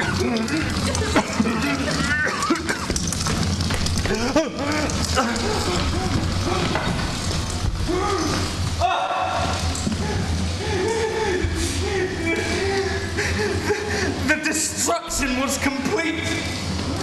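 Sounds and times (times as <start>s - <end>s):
person crying and groaning: 4.1s - 6.9s, 7.8s - 14.3s.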